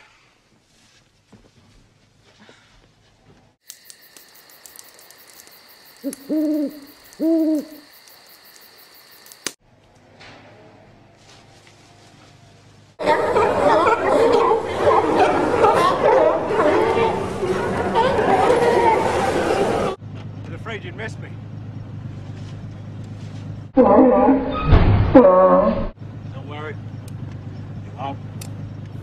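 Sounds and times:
insects chirring: 3.6 - 9.6
light regular ticks: 3.6 - 9.6
sea lions barking and honking: 13.0 - 20.0.

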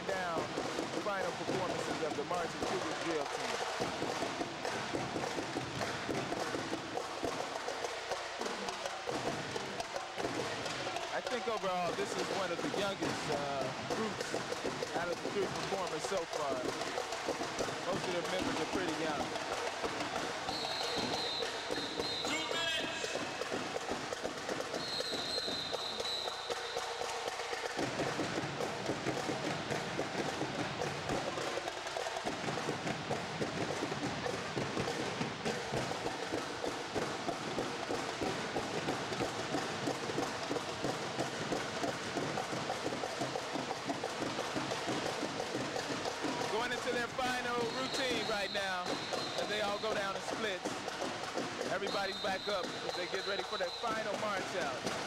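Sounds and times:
drums beating: 0.0 - 55.0
rhythmic stomps on gym floor: 0.0 - 55.0.

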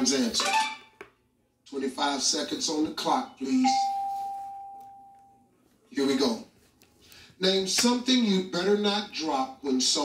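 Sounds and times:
pure chime tone: 3.7 - 5.4.

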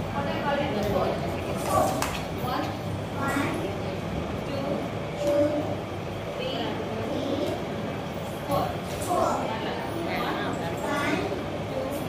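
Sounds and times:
room noise rumble: 0.0 - 12.0.

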